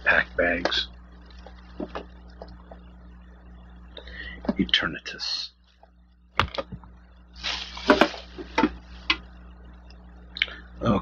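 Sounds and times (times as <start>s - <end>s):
plastic bag rustling and crinkling: 7.4s - 9.1s.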